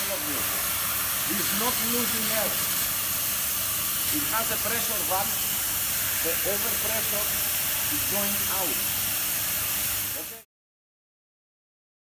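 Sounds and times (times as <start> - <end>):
relief valve hissing: 0.0 - 10.4.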